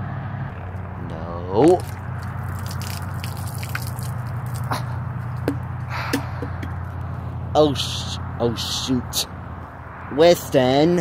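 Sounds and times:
water pouring and splashing: 1.7s - 5.5s
sharp drip-like clicks: 1.8s - 4.7s.

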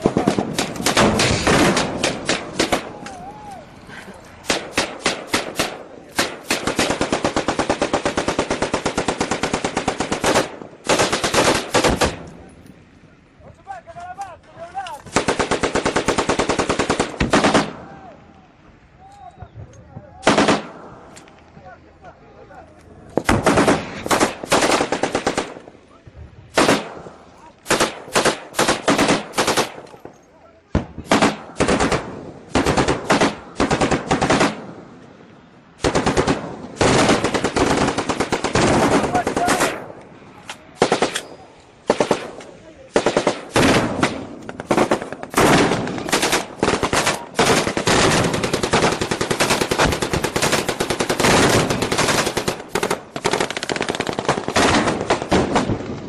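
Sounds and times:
automatic gunfire bursts: 0.0s - 2.9s, 4.4s - 12.3s, 15.1s - 17.8s, 20.2s - 20.8s, 23.2s - 25.6s, 26.6s - 26.9s, 27.7s - 29.8s, 31.0s - 34.7s, 35.8s - 39.8s, 40.8s - 41.2s, 41.8s - 55.8s.

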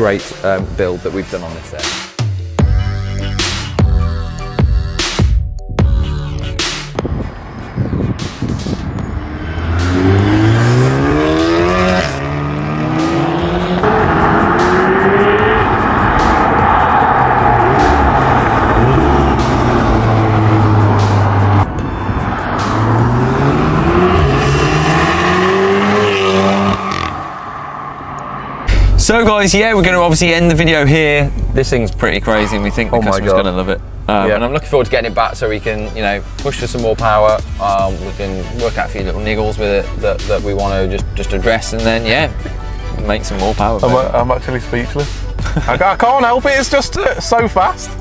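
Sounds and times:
car engine revving: 6.4s - 34.8s.

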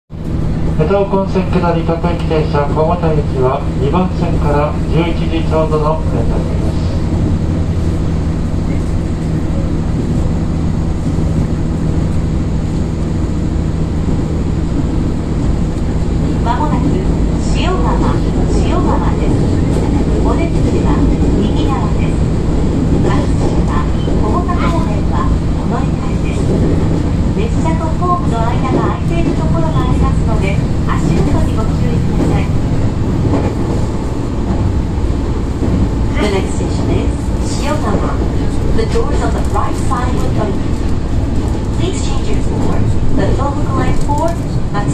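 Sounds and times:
train wheels rumbling on rails: 0.1s - 44.9s.

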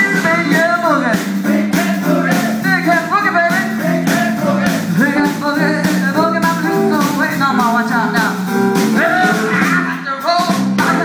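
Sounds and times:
drum kit beat: 0.0s - 11.0s
live blues band: 0.0s - 11.0s.

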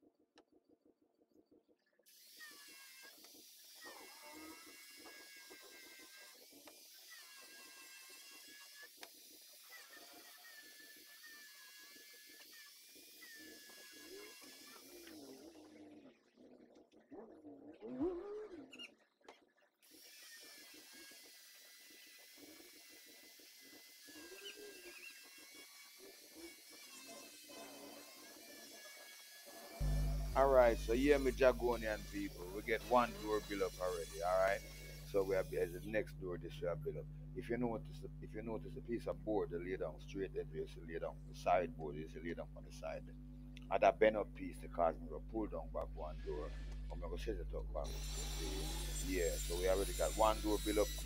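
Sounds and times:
power drill driving screws: 23.7s - 35.9s, 47.9s - 51.0s.

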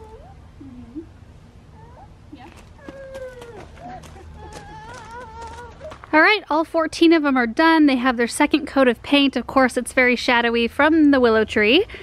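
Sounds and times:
toddler vocal sounds: 0.0s - 6.0s.

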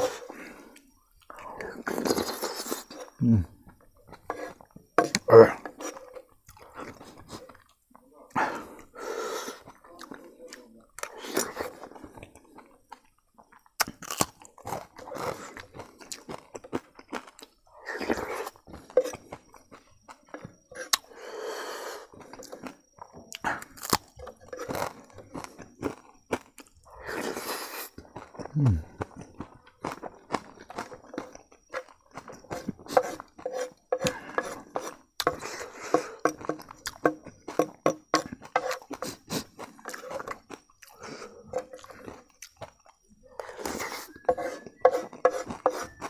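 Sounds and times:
chewing and crunching: 0.0s - 46.0s
spoon scraping on wooden plate: 4.1s - 6.3s, 18.1s - 19.2s, 24.2s - 24.9s, 31.7s - 39.2s, 39.8s - 40.4s, 41.1s - 42.0s, 43.4s - 46.0s
slurping off a spoon: 43.4s - 46.0s.

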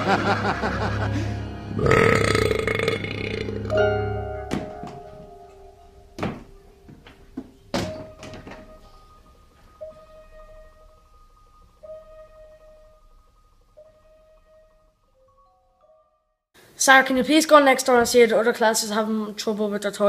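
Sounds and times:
film soundtrack music: 0.0s - 16.4s.

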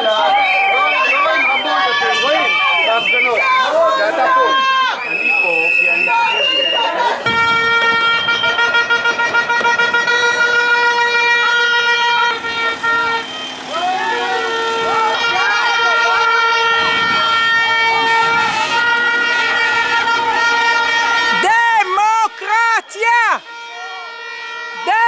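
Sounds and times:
horns blasting: 0.0s - 25.0s
voices shouting: 0.0s - 25.0s
lower horn: 5.7s - 25.0s.

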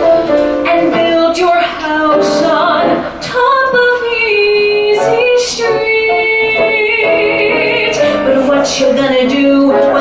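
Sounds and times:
woman singing a ballad: 0.6s - 10.0s.

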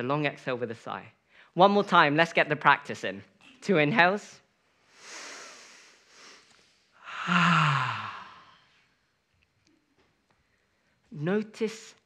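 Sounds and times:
person inhaling: 4.9s - 8.9s
long exhale with voiced sigh: 7.0s - 8.7s.

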